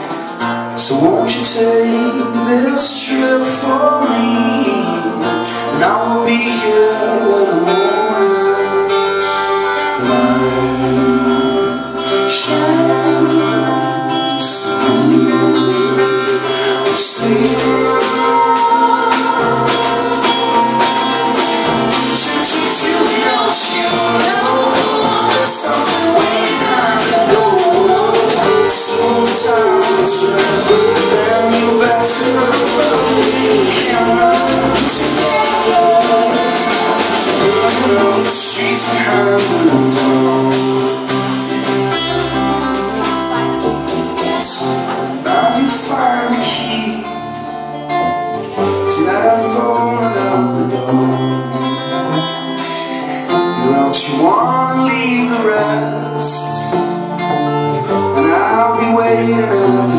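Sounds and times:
bass line: 0.0 - 59.9
electric guitar: 0.0 - 59.9
strummed acoustic guitar: 0.0 - 59.9
drum kit with cymbal hits: 9.0 - 46.7.

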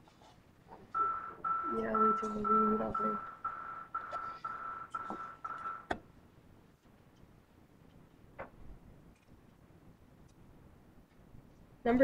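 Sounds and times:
electronic alarm beeping: 1.0 - 6.0.

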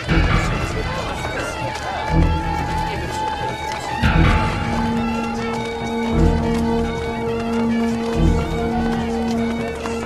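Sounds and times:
heavy percussion strikes: 0.0 - 9.4.

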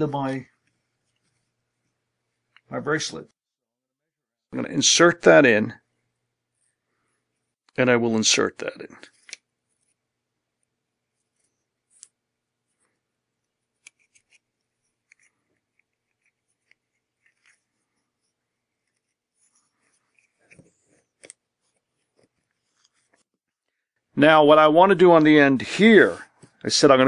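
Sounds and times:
cord rubbing through bead: 11.0 - 23.6.

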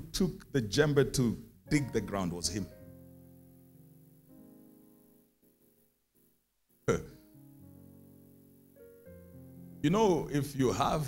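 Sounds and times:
soft keyboard chords: 0.0 - 11.0.

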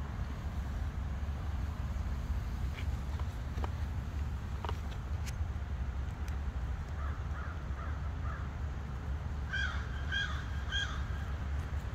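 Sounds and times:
steady low rumble: 0.0 - 11.9
bird calling: 9.5 - 11.4.

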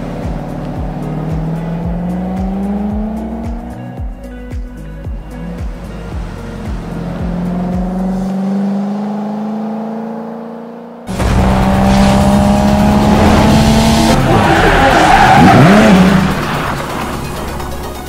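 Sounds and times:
car engine sound effect: 0.0 - 3.8, 6.2 - 18.0
car engine pulling away: 0.0 - 3.9, 5.4 - 18.0
light music: 0.0 - 9.2, 11.4 - 18.0
tire squeal: 13.4 - 17.7.

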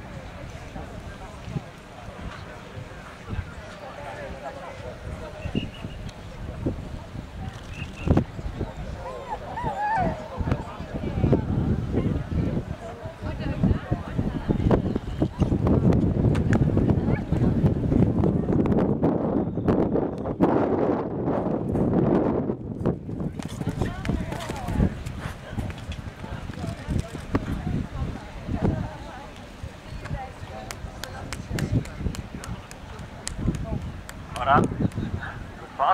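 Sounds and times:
horse hooves cantering on grass: 23.1 - 27.3.

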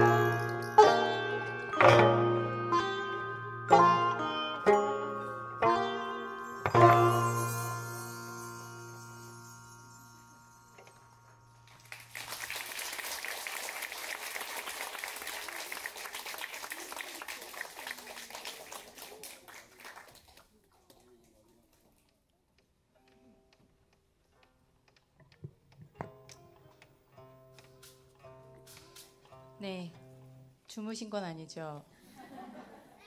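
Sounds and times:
zither and percussion chord ringing: 0.0 - 12.1
audience applause: 11.7 - 21.4.

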